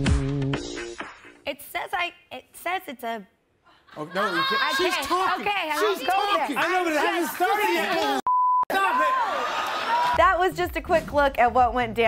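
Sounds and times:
excited voices shouting and talking: 3.9s - 10.2s
high censor beep: 8.3s - 8.7s.

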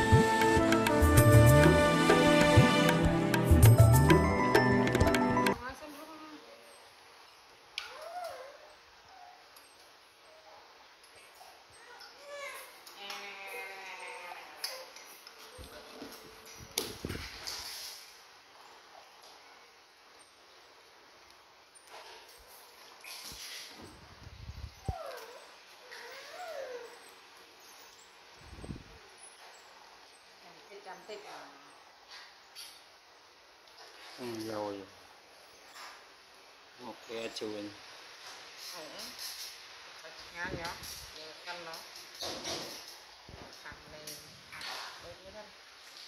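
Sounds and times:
baby monkey whimpering: 24.8s - 27.1s.

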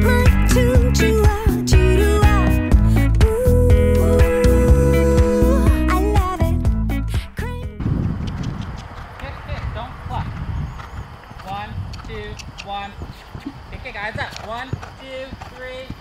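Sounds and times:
background music: 0.0s - 7.8s
horse hoofbeats on sand: 8.0s - 16.0s.

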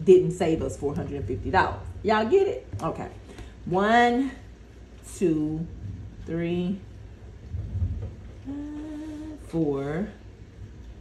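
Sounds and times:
handling noise rumble: 0.0s - 3.8s, 4.4s - 9.5s.

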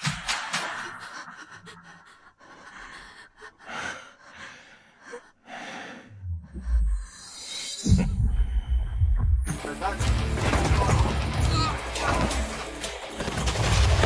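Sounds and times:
tense breathing and gasps: 0.6s - 9.4s
deep rumble: 6.1s - 7.3s.

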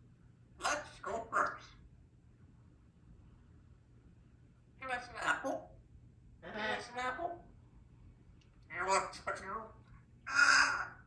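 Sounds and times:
parrot harsh squawk: 0.6s - 1.8s, 4.9s - 5.7s, 8.7s - 9.6s, 10.3s - 11.0s
parrot mumbling: 0.6s - 1.8s, 4.9s - 5.7s, 8.7s - 9.6s, 10.3s - 11.0s.

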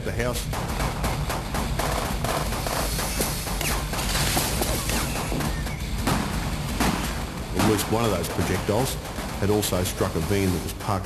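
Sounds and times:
automatic gunfire: 0.5s - 11.0s.

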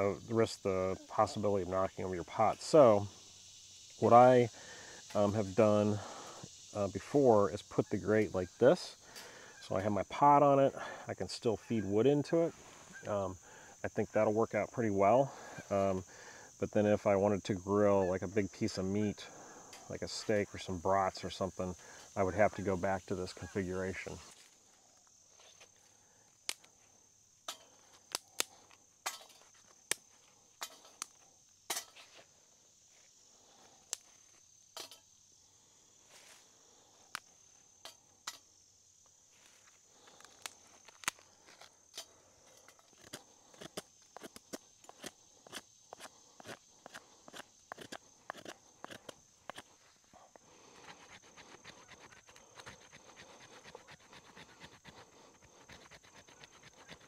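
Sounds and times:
high insect drone: 0.0s - 57.0s
knife rasping through wood: 43.0s - 49.7s.

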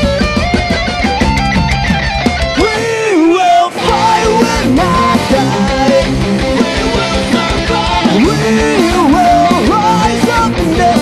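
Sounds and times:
electric guitars playing a riff: 0.0s - 11.0s.

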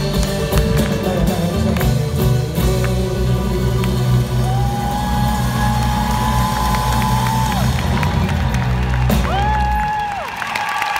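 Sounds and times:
deep bass: 0.0s - 9.7s
audience cheering: 4.2s - 10.9s
high whoops: 4.4s - 7.9s, 9.2s - 10.9s.

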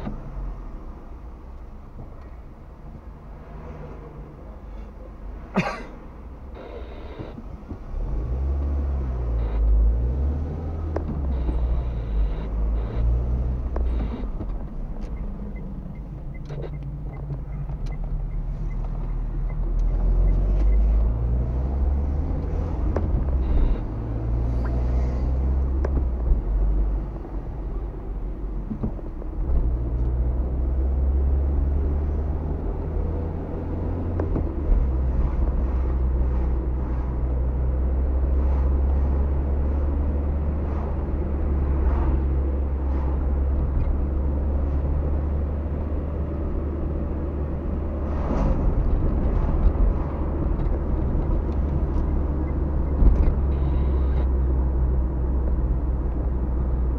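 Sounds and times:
road rumble: 0.0s - 56.9s
car engine accelerating: 6.5s - 56.9s.

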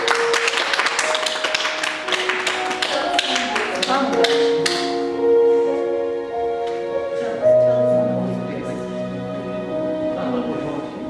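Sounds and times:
small group clapping: 0.0s - 5.0s
soft background music: 0.0s - 11.0s.

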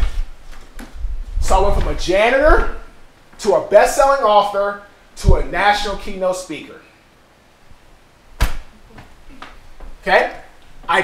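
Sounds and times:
sharp knock or clap: 8.4s - 8.7s.

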